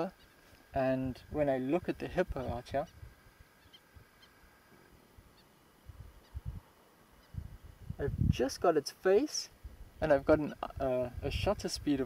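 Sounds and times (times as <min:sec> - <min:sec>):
faint bird chirps: 0:00.0 - 0:00.5, 0:02.4 - 0:07.4
soft low rumbles: 0:00.6 - 0:08.6.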